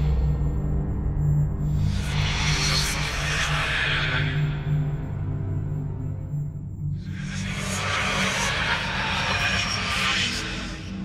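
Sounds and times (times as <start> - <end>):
low sustained drone: 0.0 - 10.9.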